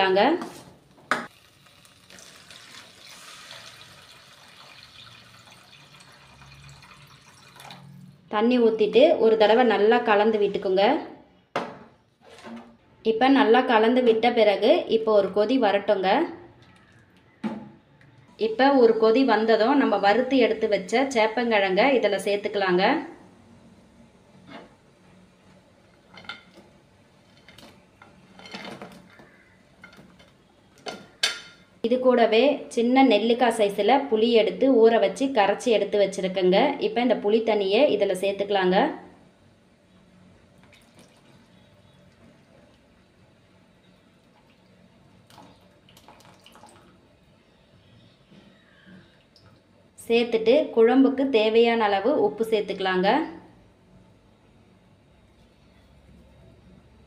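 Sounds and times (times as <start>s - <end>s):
water pouring into a pan: 1.3s - 8.1s, 44.2s - 47.0s.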